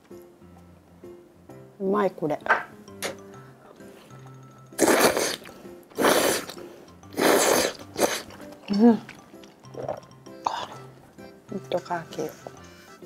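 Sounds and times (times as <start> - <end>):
background music: 0.0 - 13.0
noodles being slurped: 4.8 - 9.2.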